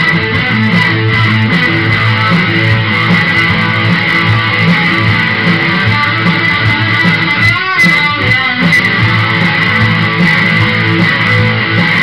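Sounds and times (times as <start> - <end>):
low bass notes: 0.0 - 7.5, 8.2 - 12.0
electric guitar playing: 0.0 - 12.0.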